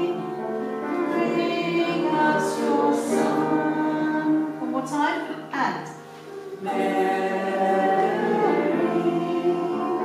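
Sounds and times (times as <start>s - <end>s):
choir singing held notes: 0.0s - 4.9s, 5.9s - 10.0s.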